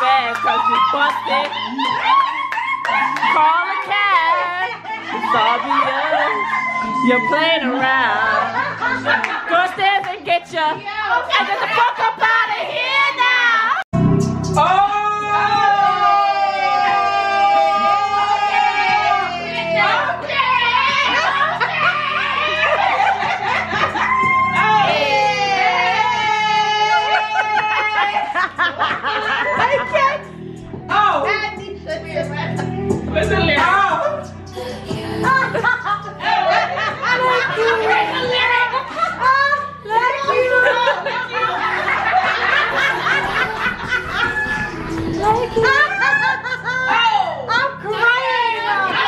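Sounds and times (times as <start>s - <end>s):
women laughing: 0.0s - 13.0s, 17.2s - 30.3s, 34.0s - 49.0s
background music: 0.0s - 49.0s
song playing in room: 0.0s - 49.0s.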